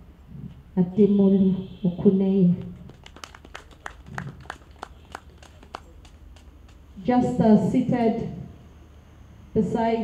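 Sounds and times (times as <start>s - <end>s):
sparse hand clapping: 2.6s - 6.8s.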